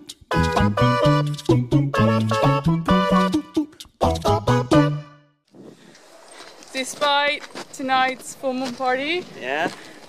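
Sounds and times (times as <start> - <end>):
woman talking: 6.7 - 9.8.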